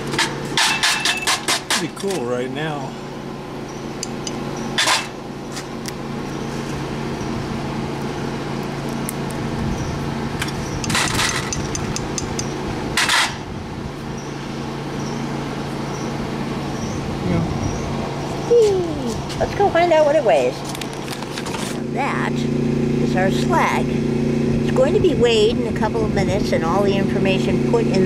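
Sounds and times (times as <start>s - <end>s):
low motor hum: 1.8s - 28.0s.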